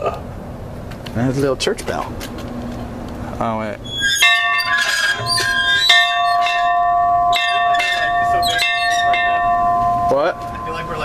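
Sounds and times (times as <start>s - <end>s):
church bell ringing: 4.2s - 11.0s.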